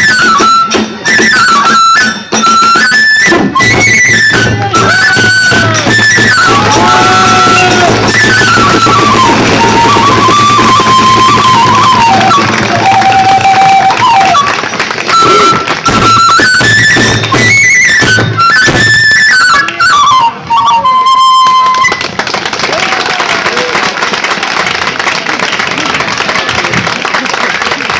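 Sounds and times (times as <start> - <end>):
bamboo flute melody: 0.0 - 23.7
applause: 8.9 - 17.3, 21.4 - 27.9.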